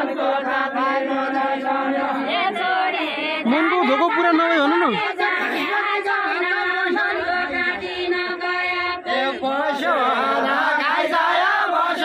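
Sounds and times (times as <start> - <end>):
group singing folk song: 0.0 - 12.0.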